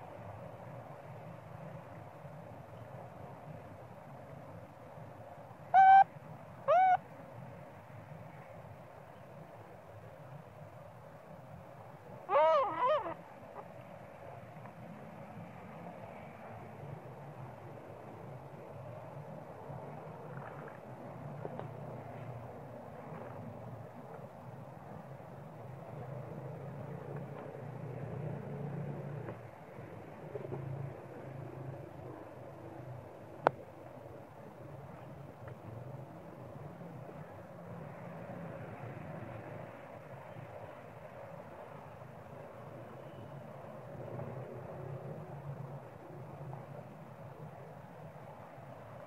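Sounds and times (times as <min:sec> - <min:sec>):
low outdoor rumble: 0:00.0 - 0:49.0
macaque coo calls: 0:05.8 - 0:06.1, 0:06.7 - 0:07.0, 0:12.3 - 0:13.2.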